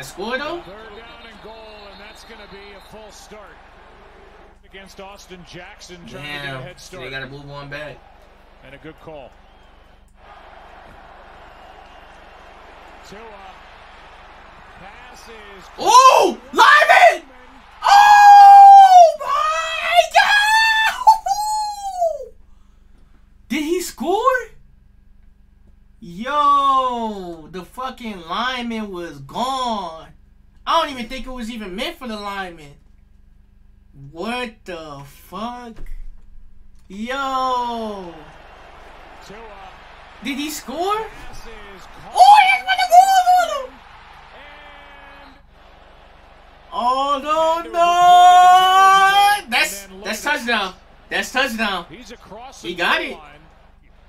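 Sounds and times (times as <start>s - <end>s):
man screaming excitedly: 15.7s - 22.3s, 40.2s - 45.4s, 46.7s - 51.8s.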